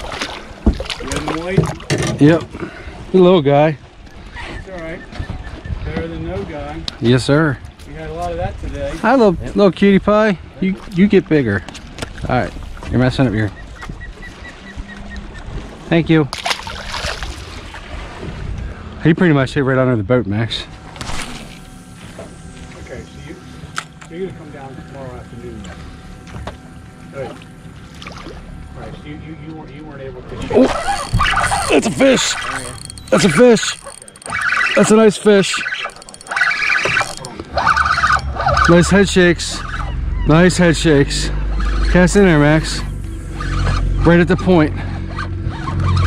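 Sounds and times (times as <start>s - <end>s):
wind and water rumble: 0.0s - 46.0s
fishing reel drag buzzing: 20.7s - 26.9s, 30.5s - 46.0s
short high peeps: 30.6s - 39.0s
low rumble: 36.4s - 46.0s.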